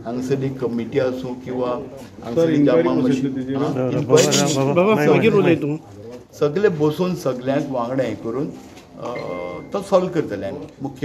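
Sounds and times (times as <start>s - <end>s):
man speaking: 0.2s - 5.8s.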